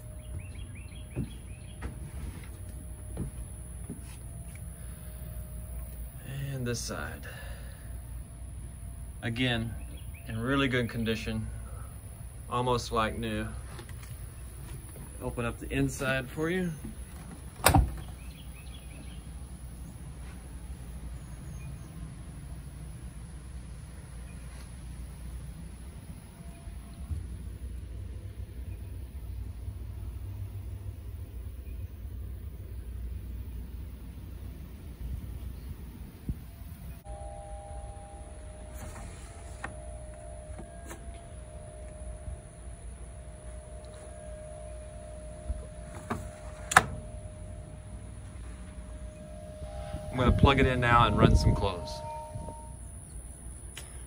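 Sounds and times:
low background rumble: 0.0 - 54.0
door latch clicking: 17.2 - 18.1, 45.9 - 47.2.

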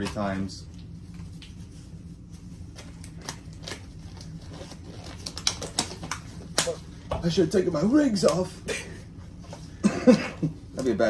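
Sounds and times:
disposable gloves crackling and snapping: 0.0 - 1.7, 2.6 - 7.4, 8.0 - 8.5.

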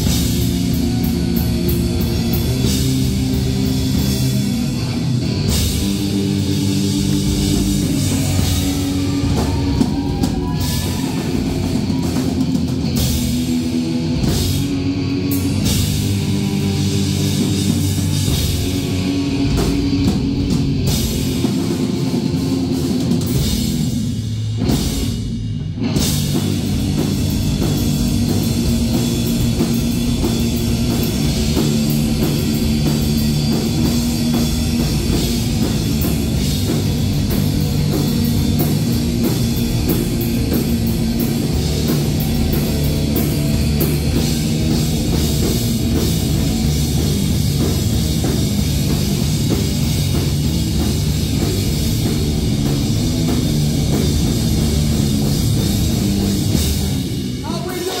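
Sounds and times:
distorted electric guitars: 0.0 - 58.0
pounding drum kit: 0.0 - 58.0.

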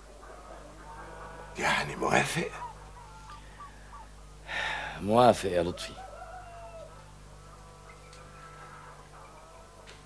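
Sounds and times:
faint hens clucking: 0.0 - 10.0
steady low hum: 0.0 - 10.0.

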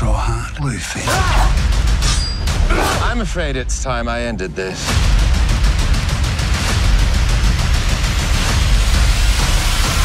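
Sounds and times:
loud action music: 1.0 - 10.0.

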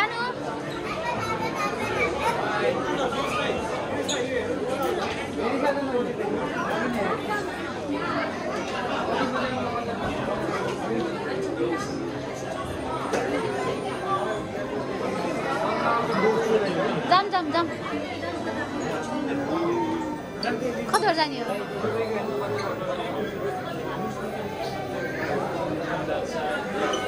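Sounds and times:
chatter of many people: 0.0 - 27.0.

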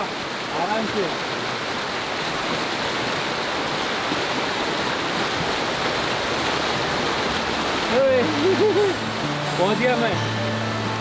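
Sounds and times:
river rushing through rapids: 0.0 - 11.0.

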